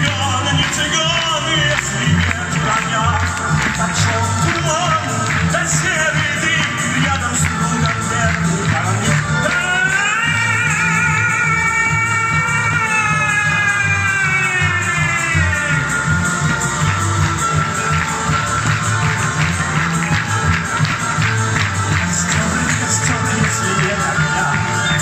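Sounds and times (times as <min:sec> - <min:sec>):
instrumental accompaniment with beat: 0:00.0 - 0:25.0.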